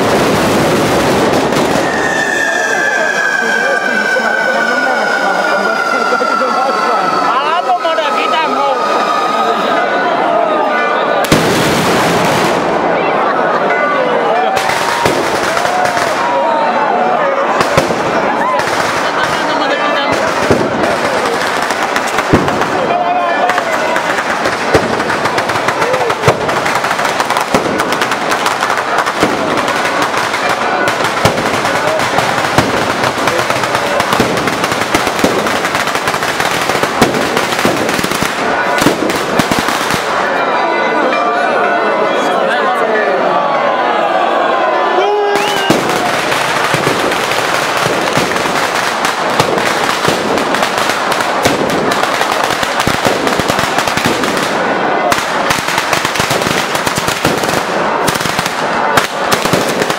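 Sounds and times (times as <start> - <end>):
firecracker bangs: 0.0 - 2.7, 11.2 - 13.0, 14.5 - 16.4, 17.5 - 40.4, 45.4 - 59.9
firecrackers crackling: 0.0 - 9.2, 11.2 - 13.8, 14.4 - 16.7, 17.4 - 40.4, 45.3 - 59.9
crowd shouting: 0.0 - 59.9.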